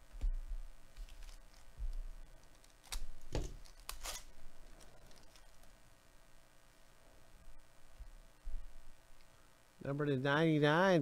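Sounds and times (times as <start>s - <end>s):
foil wrapper tearing and crinkling: 2.4s - 5.7s.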